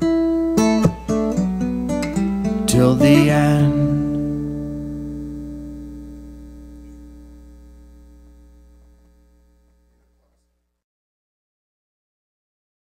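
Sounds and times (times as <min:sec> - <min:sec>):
acoustic guitar chord ringing: 0:00.0 - 0:08.9
low mains hum: 0:00.0 - 0:10.8.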